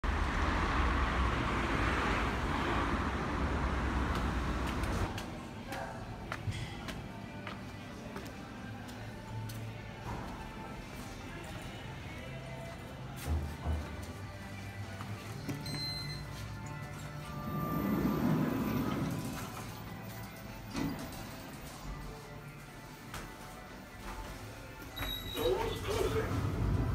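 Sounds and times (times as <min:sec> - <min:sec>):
faint music: 0:03.0 - 0:26.9
footsteps: 0:20.7 - 0:26.3.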